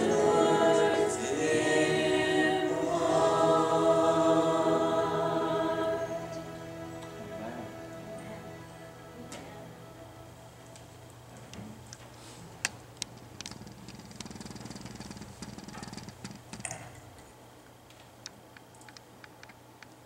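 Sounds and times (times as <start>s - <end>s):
hymn singing: 0.0s - 11.4s
low steady hum: 0.0s - 20.0s.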